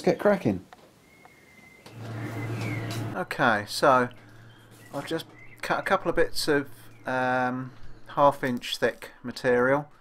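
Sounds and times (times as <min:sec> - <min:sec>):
machine humming with fan noise: 0:01.8 - 0:08.4.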